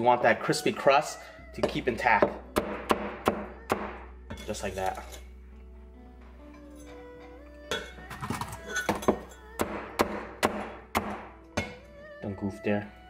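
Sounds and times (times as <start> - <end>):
quiet background music: 0.0 - 13.0.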